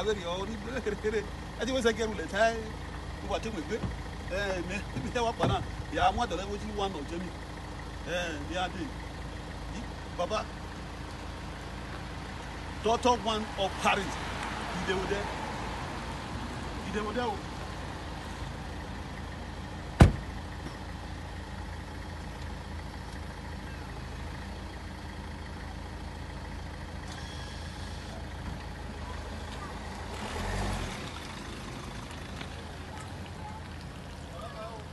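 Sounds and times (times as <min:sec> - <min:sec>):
car engine moving off: 0:00.0 - 0:34.9
car door slamming: 0:04.9 - 0:05.8, 0:20.0 - 0:20.8.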